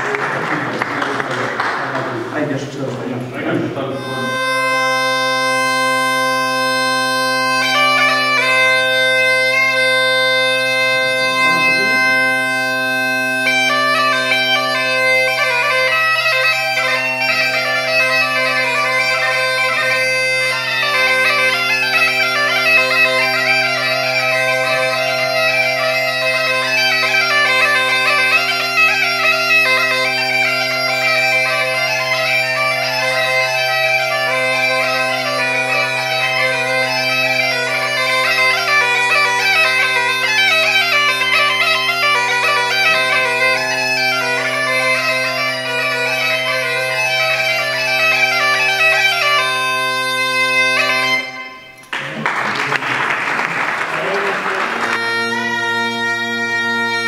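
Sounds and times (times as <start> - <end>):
bagpipe drone: 1.6 - 57.0
bagpipe chanter melody: 3.9 - 52.0, 53.1 - 57.0.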